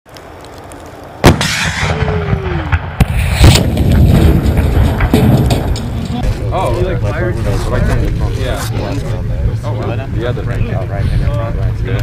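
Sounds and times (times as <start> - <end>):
sharp crack: 0.1 - 6.4
rocket whine falling in pitch: 1.2 - 5.8
rocket launcher blast: 1.2 - 6.0
explosion: 1.2 - 6.3
low rumble: 1.2 - 12.0.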